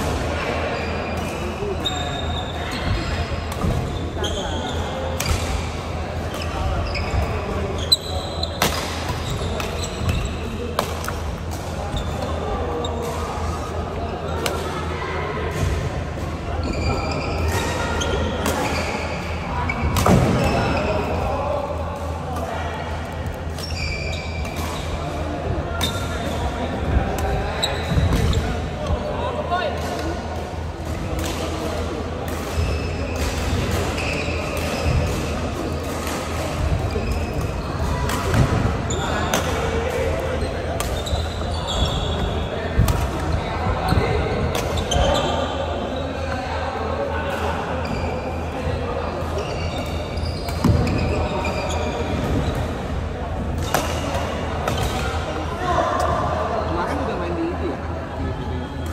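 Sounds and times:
rackets hitting shuttlecock: 8.6 - 10.2, 10.8 - 12.4, 40.8 - 41.2, 53.5 - 55.2.

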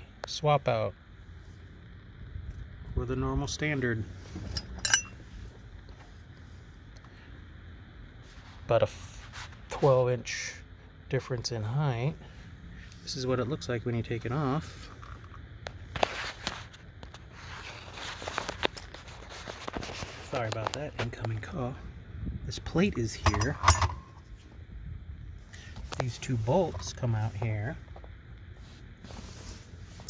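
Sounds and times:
metal hardware clinking: 4.4 - 5.2, 23.1 - 24.2
microphone rubbing on clothing: 15.9 - 21.2, 28.5 - 30.0.

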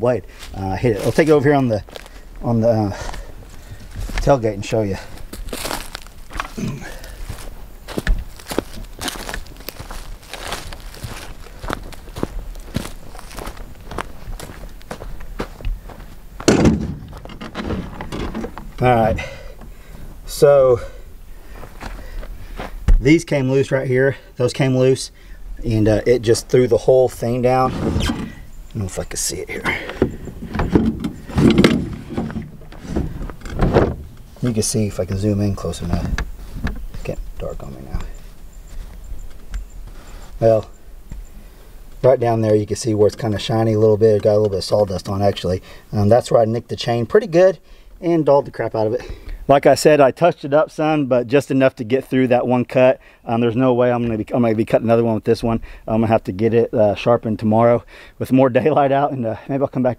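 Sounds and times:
footsteps crunching on dry leaves: 0.3 - 4.3, 5.0 - 16.2, 21.4 - 22.8
phone handling rustling and bumping: 16.4 - 19.7, 29.6 - 34.3
loud thud: 16.5 - 18.0.

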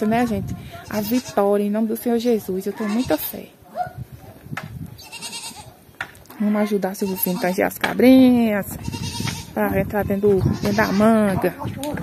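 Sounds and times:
goat bleating: 0.8 - 1.5, 2.7 - 3.4, 5.0 - 5.7, 6.5 - 7.7, 8.7 - 9.6, 10.4 - 11.3.

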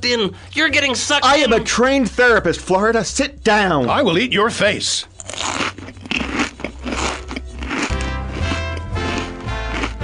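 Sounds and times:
music: 0.0 - 10.0
comic biting and crunching: 5.1 - 10.0.

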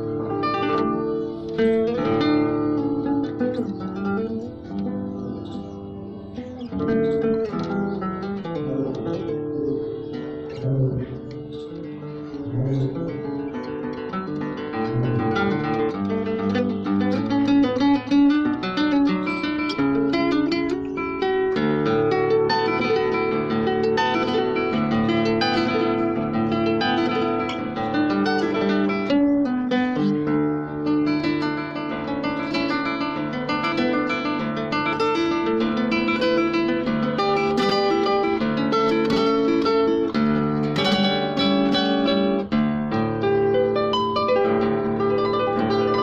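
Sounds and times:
classical guitar fingerstyle: 0.0 - 46.0.

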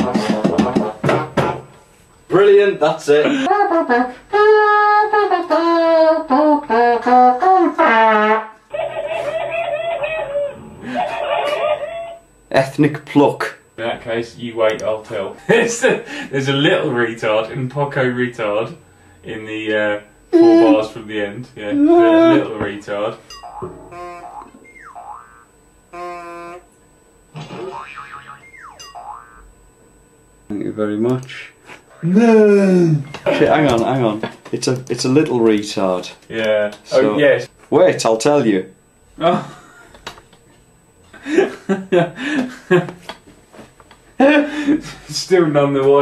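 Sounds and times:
buzzy wavering synth tone: 23.2 - 32.7
brass-like synth melody: 23.5 - 26.7.

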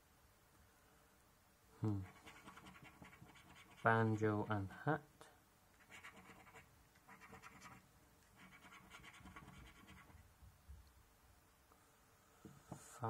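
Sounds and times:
coin scratching scratchcard: 2.0 - 4.0, 5.8 - 10.2.

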